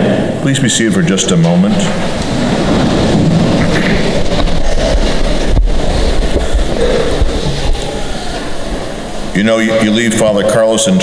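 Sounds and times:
rustle and shuffle of people sitting: 0.0s - 11.0s.

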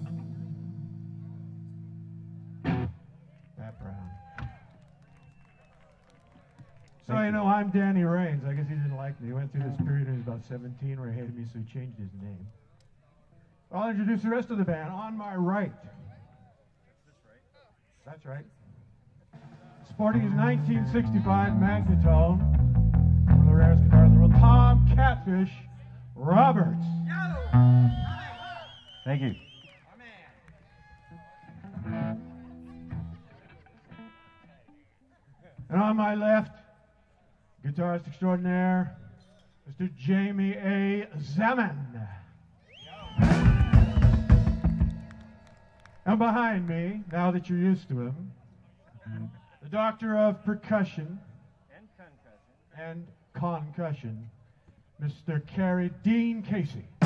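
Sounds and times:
electric guitar sustained notes: 0.0s - 3.1s, 26.5s - 28.3s, 31.5s - 34.5s
faint murmuring voices: 29.5s - 35.7s.

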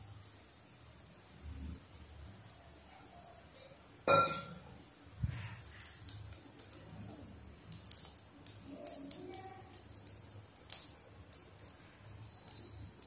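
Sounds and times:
seeds crackling in hot oil: 0.0s - 2.8s, 4.7s - 13.0s.

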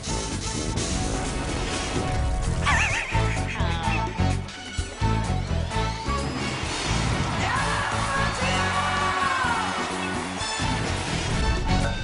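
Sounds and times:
theme music with steady beat: 0.0s - 12.0s.

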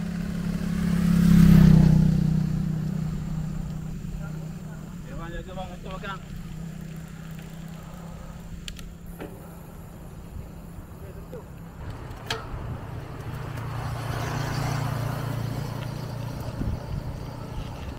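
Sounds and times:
motor vehicle passing: 0.0s - 17.9s
wind and road noise: 0.0s - 17.9s.

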